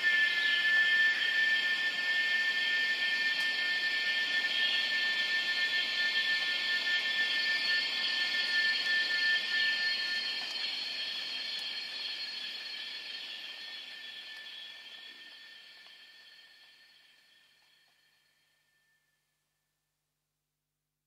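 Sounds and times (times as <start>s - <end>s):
hiss: 0.0s - 18.5s
high-pitched sustained drone: 0.0s - 19.2s.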